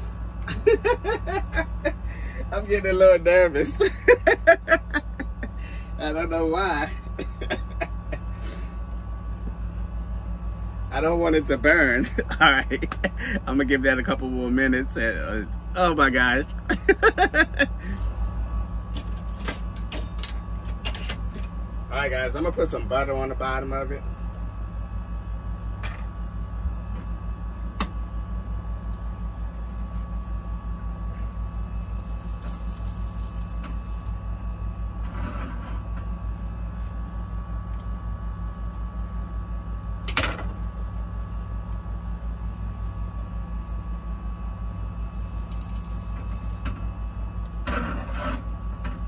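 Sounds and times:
low mechanical hum: 0.0 - 49.0
frying pan sizzling: 45.0 - 46.6
spatula scraping in pan: 47.7 - 48.5.

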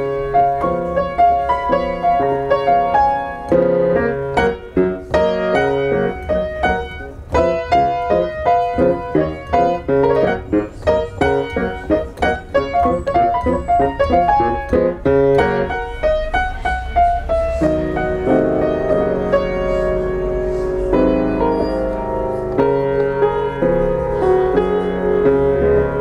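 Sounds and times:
piano playing: 0.0 - 26.0.

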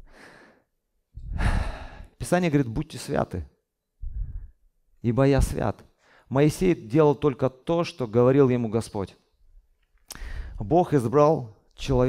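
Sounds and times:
man breathing into microphone: 0.0 - 2.2, 4.0 - 4.6, 10.1 - 10.6.

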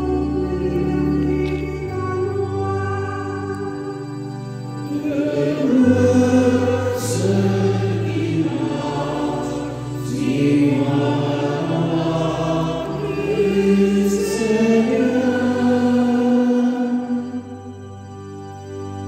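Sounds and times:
sustained low notes: 4.2 - 19.0.

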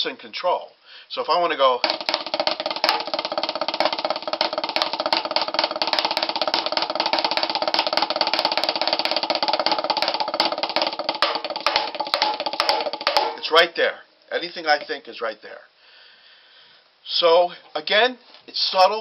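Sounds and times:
drumsticks roll on practice pad: 1.8 - 13.5.

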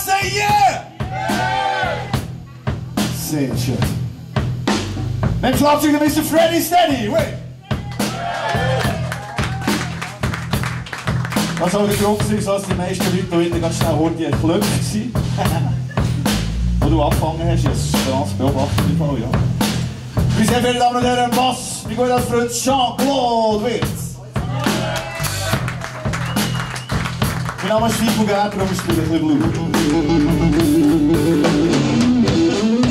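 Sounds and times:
blues band playing: 0.0 - 32.9
drums and cymbals: 0.0 - 32.9
electric bass line: 0.0 - 32.9
sharp drum kit hits: 8.0 - 22.4
sustained low bass note: 15.9 - 20.4.

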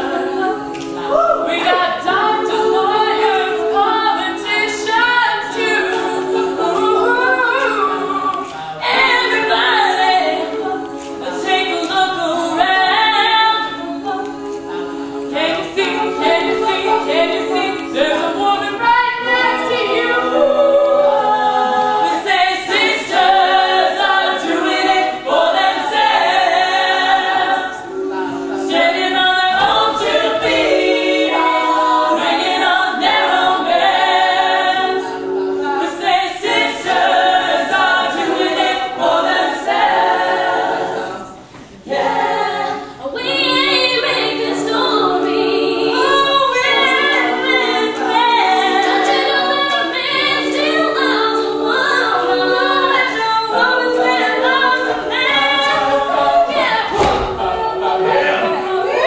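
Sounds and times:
female a cappella group singing: 0.0 - 59.0.

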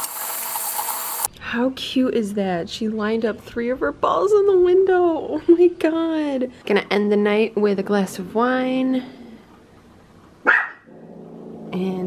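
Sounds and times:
dog barking: 10.4 - 10.9.

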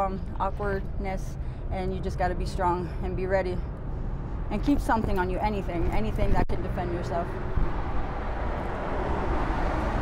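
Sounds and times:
road traffic rushing: 0.0 - 10.0.

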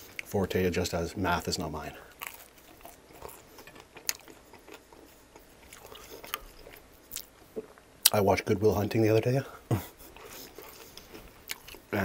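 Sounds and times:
chewing wet mouth sounds: 2.2 - 8.2, 10.0 - 11.9.

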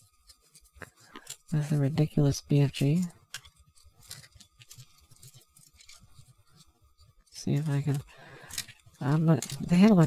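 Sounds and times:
plastic parts clicking and rustling: 0.0 - 1.8, 2.7 - 10.0.

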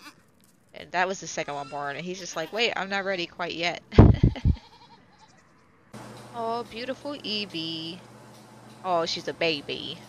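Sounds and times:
faint goat call: 0.0 - 0.2, 4.4 - 5.5
low buffeting rumble: 0.8 - 4.6, 5.9 - 10.0.

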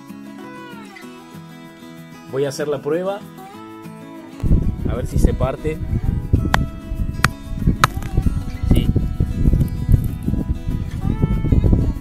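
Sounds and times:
acoustic guitar music: 0.0 - 12.0
stone snapping apart: 6.5 - 8.2.

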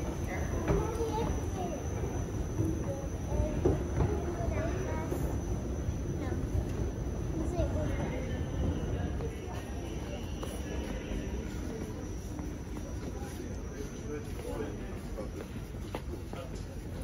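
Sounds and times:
indistinct chatter: 0.0 - 17.0.

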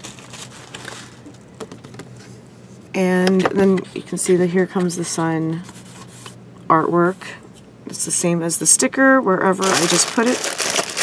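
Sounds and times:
card rustling: 9.6 - 11.0.

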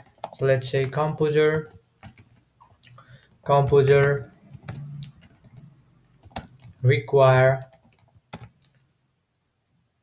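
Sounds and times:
keyboard keystroke clicks: 7.6 - 8.8.

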